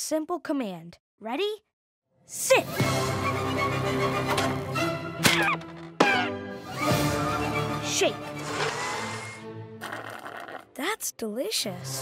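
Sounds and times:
light background music: 0:02.4 - 0:09.9
cartoon blender whirring: 0:08.4 - 0:10.7.

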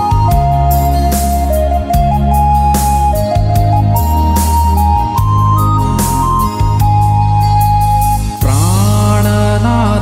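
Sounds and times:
keyboard playing sustained chords: 0:00.0 - 0:10.0
man singing: 0:08.4 - 0:10.0.

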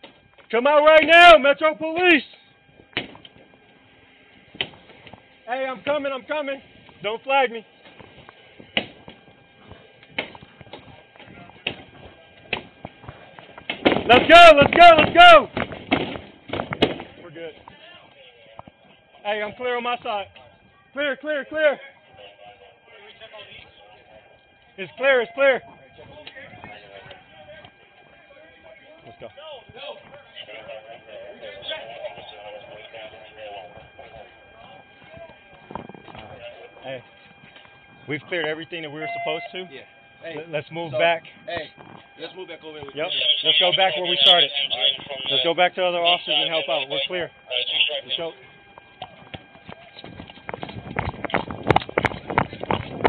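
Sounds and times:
thin steady tones: 0:00.0 - 0:53.0
distant voices and shouting: 0:10.6 - 0:15.6, 0:17.0 - 0:50.9
running footsteps on pavement: 0:49.0 - 0:53.0.

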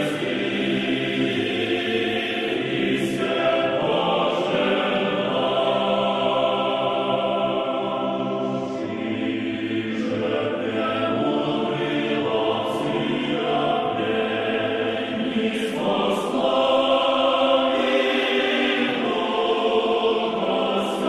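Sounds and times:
church choir singing a slow chant: 0:00.0 - 0:21.0.

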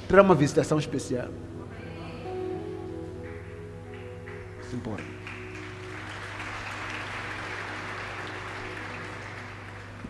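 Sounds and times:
congregation applauding: 0:02.2 - 0:10.0.

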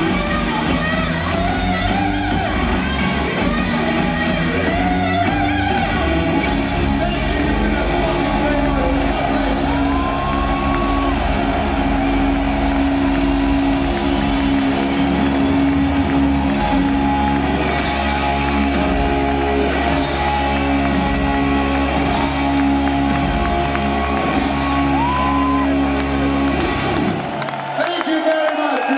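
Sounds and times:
heavy metal band playing live: 0:00.0 - 0:27.4.

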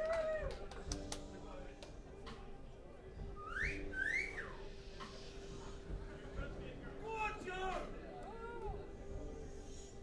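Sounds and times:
person whistling: 0:03.4 - 0:04.6.

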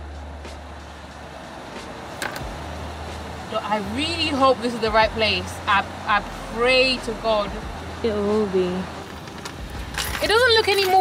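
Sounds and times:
rumble of motor traffic: 0:00.0 - 0:11.0.

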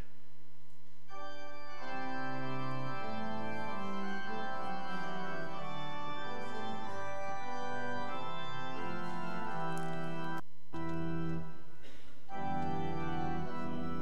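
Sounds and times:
organ playing held chords: 0:01.1 - 0:14.0.

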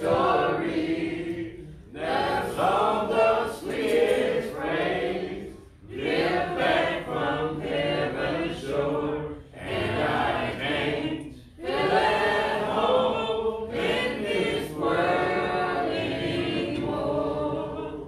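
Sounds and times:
congregation singing a hymn: 0:00.0 - 0:18.0.

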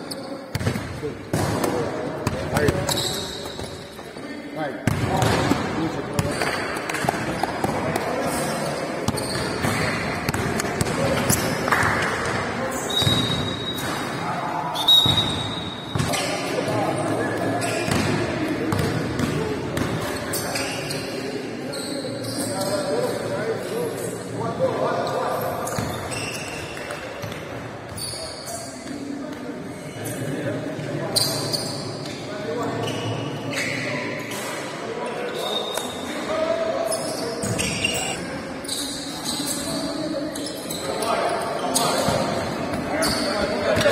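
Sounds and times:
players' voices: 0:00.0 - 0:26.1, 0:26.8 - 0:43.9
basketball striking hardwood court: 0:00.5 - 0:03.0, 0:04.8 - 0:07.8
basketballs bouncing on hardwood floor: 0:09.1 - 0:11.3
voices talking: 0:35.1 - 0:43.9
short high squeak: 0:36.9 - 0:39.7.

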